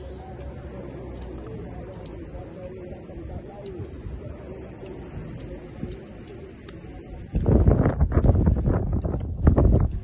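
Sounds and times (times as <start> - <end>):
wind buffeting microphone: 2.2 - 10.0.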